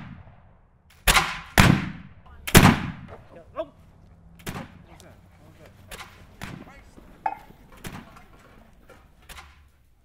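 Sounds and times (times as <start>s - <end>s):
musket shots with echo: 0.0s - 3.2s, 4.4s - 4.8s.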